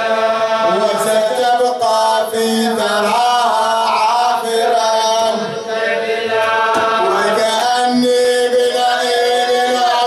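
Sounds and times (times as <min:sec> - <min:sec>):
man chanting into a microphone: 0:00.0 - 0:05.8, 0:06.4 - 0:10.0.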